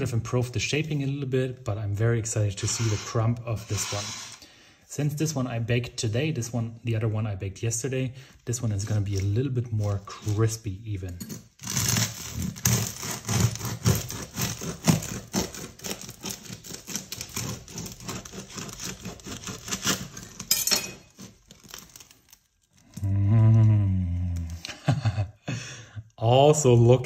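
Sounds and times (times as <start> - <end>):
bread knife sawing crusty loaf: 2.4 - 4.4, 11.6 - 22.0.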